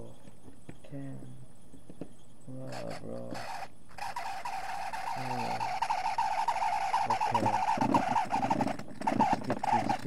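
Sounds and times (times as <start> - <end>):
small electric motor running: 2.7 - 10.0
fast uneven chatter: 5.1 - 8.6.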